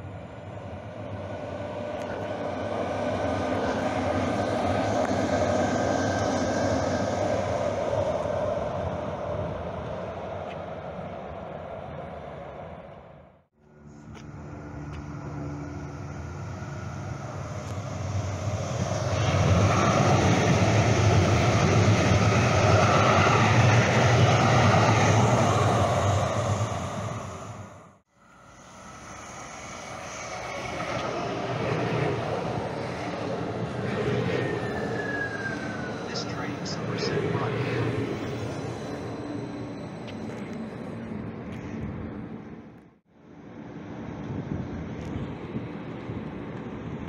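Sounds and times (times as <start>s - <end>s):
falling whine: 0.0s - 42.8s
light-rail train rumble: 0.0s - 47.0s.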